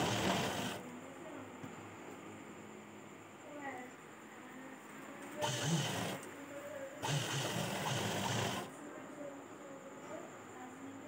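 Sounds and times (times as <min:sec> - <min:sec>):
sewing machine stitching: 0:00.0 - 0:00.8, 0:05.4 - 0:06.3, 0:07.0 - 0:08.7.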